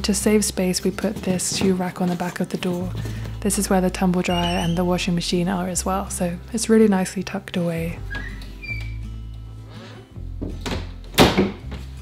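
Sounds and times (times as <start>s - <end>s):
background music with low notes: 0.0s - 12.0s
closet doors shutting: 8.0s - 9.0s.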